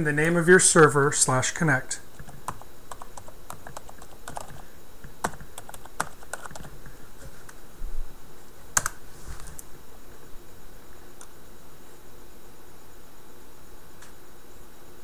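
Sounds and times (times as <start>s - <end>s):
computer keyboard typing: 2.1s - 7.3s, 8.8s - 9.6s.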